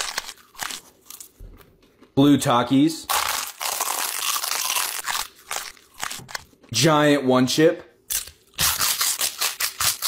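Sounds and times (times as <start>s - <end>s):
crunching tortilla chip: 0.0s - 1.3s, 3.1s - 6.5s.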